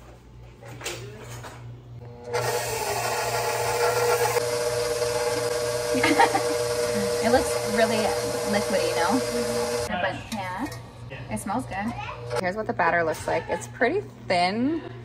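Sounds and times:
stand mixer whining: 2.0 - 9.9.

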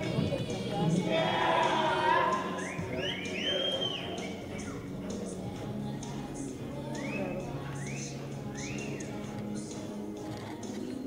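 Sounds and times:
background music: 0.0 - 11.0
high whistle-like gliding tones: 1.1 - 4.9, 6.8 - 9.2.

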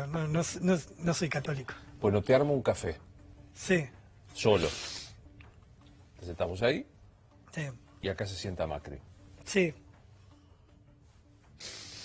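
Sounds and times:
short breathy hiss: 4.6 - 5.2, 11.6 - 12.0.

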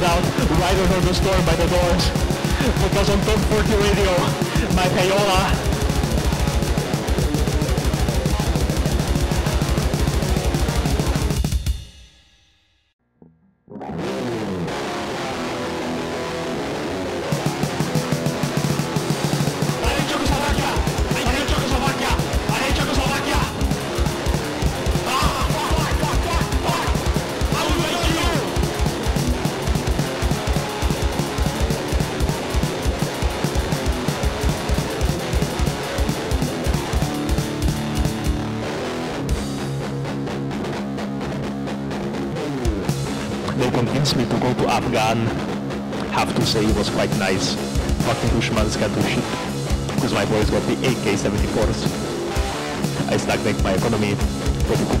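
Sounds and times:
distorted electric guitar: 0.0 - 12.0, 13.0 - 55.0
fast metal drumming: 0.0 - 12.0, 17.3 - 39.7, 46.1 - 55.0.

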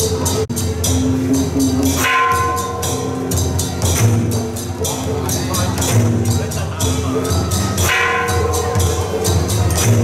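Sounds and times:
cymbals struck in steady beat: 0.0 - 10.0
drums: 0.0 - 10.0
bell-like ringing tone: 2.0 - 3.4.

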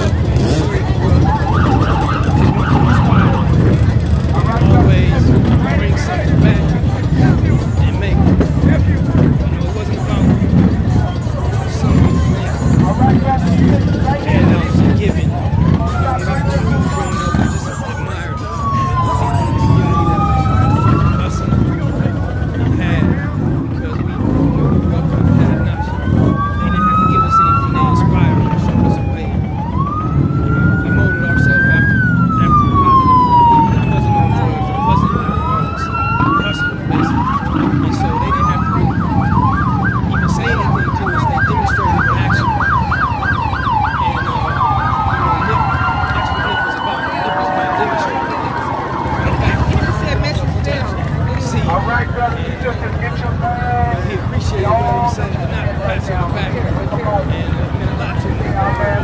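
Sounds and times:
emergency siren wailing: 0.0 - 59.0
large crowd noise: 0.0 - 59.0.

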